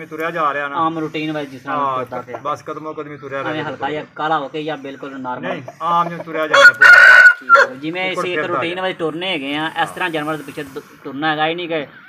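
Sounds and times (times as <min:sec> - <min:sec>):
men's voices: 0:00.0 - 0:12.0
rooster crowing: 0:06.5 - 0:07.8.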